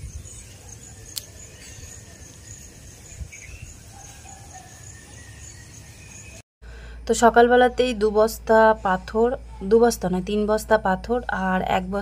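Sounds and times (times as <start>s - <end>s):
cricket chirping: 0.0s - 11.9s
low steady hum: 6.7s - 12.0s.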